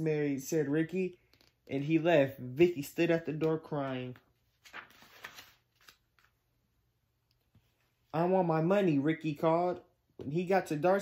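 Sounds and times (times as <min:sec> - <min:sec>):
book page turning: 0:03.3 - 0:06.4.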